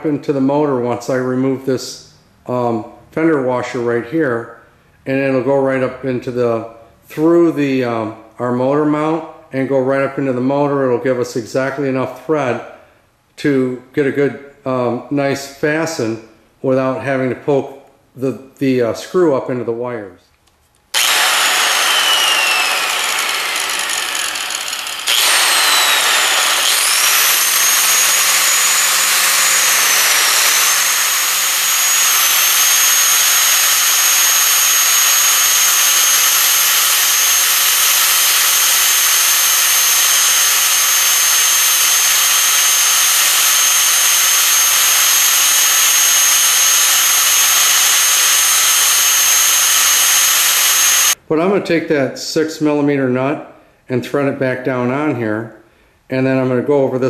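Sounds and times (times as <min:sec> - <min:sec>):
angle grinder whining: 0:20.9 - 0:51.2
grinder disc grinding screw: 0:20.9 - 0:51.2.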